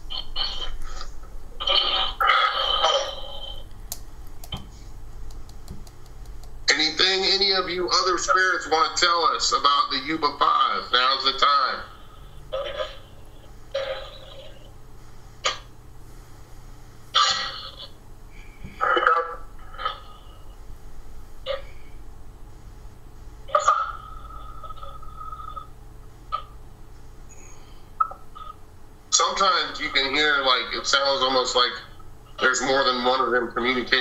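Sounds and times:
radio static: 0.0 - 3.6, 6.7 - 14.7, 23.5 - 25.7, 29.2 - 34.0.

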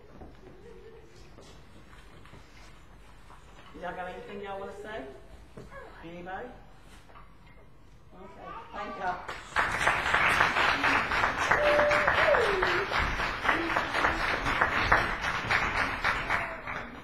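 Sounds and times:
audience applauding: 9.3 - 17.0.

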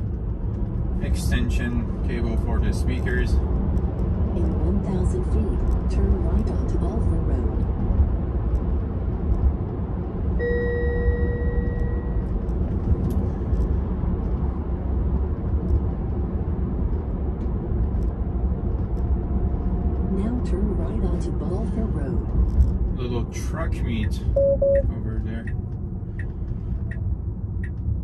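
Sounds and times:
road and tyre rumble in car cabin: 0.0 - 28.0
electronic chime tone: 10.4 - 12.2, 24.4 - 24.8.

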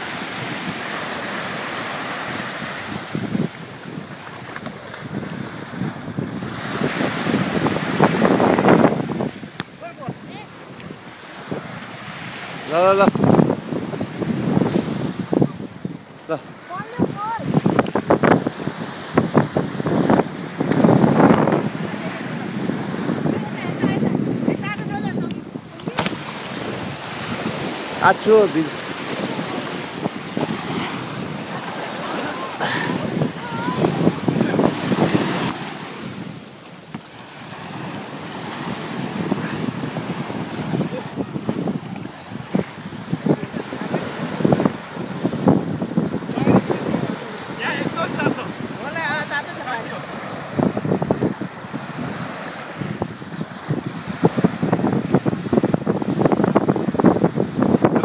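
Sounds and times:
small waves washing onto beach: 0.0 - 58.0
wind on microphone: 0.0 - 58.0.

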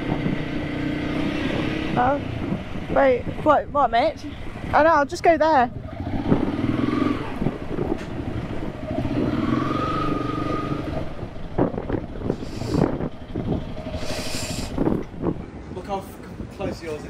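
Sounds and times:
motorcycle engine at low speed: 0.0 - 15.7.

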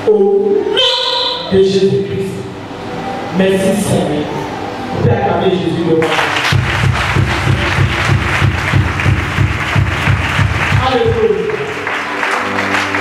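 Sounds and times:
person speaking: 0.0 - 6.4
church worship music: 0.0 - 13.0
clapping: 6.0 - 13.0
low drum beat: 6.5 - 11.4.

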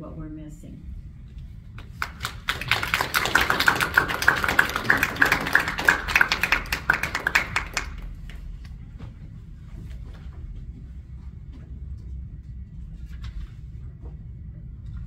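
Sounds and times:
audience applauding: 1.8 - 8.5.

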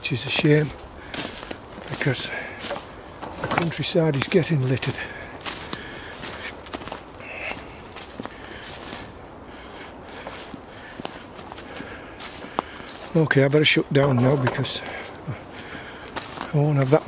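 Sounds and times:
footsteps rustling on dry grass: 0.0 - 17.0.

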